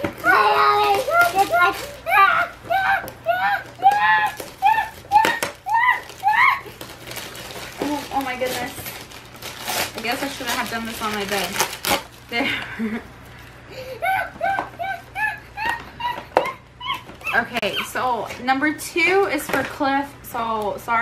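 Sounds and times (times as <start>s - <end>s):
wrapping paper crinkling and tearing: 0.0s - 12.4s
high-pitched excited voices: 0.2s - 6.8s.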